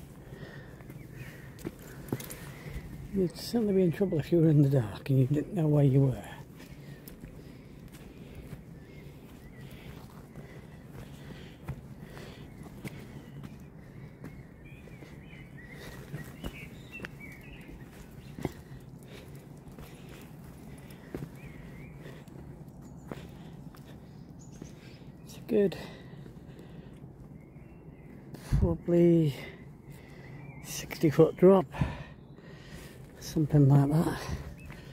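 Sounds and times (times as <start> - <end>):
footsteps on rock and grass: 0.0 - 28.8, 32.6 - 34.9.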